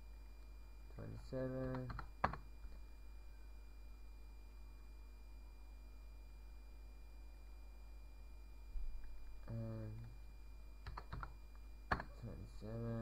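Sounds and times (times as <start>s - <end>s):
low hum and hiss: 0.0s - 13.0s.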